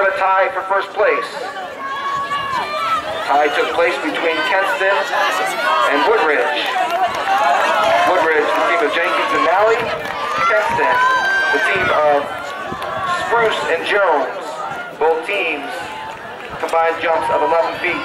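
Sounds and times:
people talking and calling out: 0.0 - 18.0.

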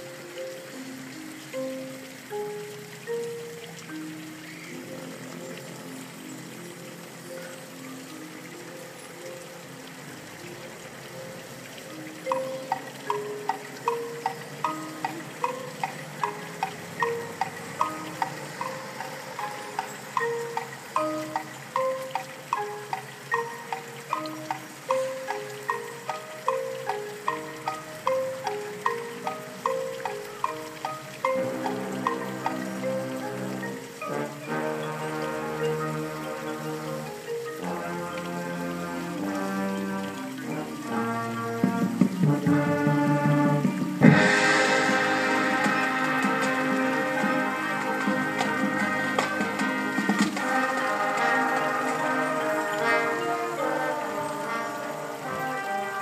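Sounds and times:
marching band playing: 25.8 - 56.0
steady struck drum beat: 41.6 - 50.4.

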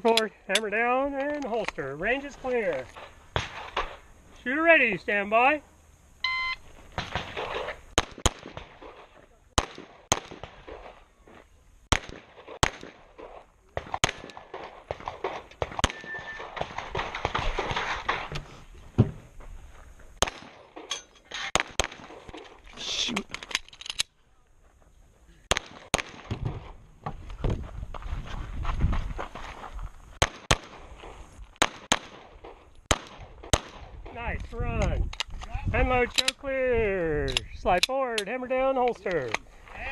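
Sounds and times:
shot timer beep: 6.2 - 6.6
pistol shots: 7.0 - 11.0, 11.9 - 18.2, 20.2 - 20.9, 21.5 - 22.4, 25.5 - 26.7, 30.2 - 30.9, 31.6 - 34.0
movement noise: 26.4 - 30.2.

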